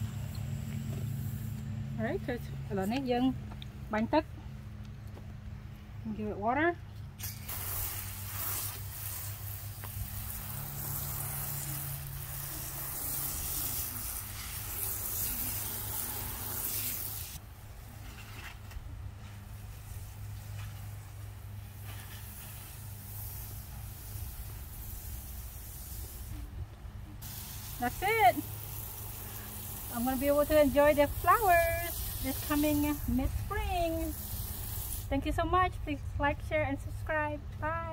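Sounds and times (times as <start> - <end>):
water spraying from hose nozzle: 7.2 - 26.5, 27.2 - 35.2.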